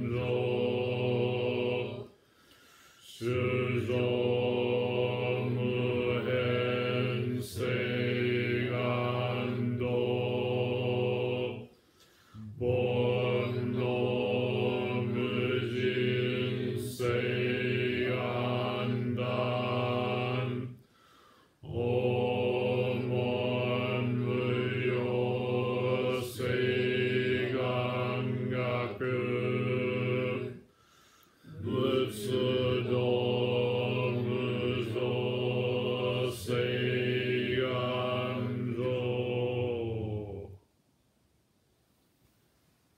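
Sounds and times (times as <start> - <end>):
monotone chanting: 0.0 - 40.7.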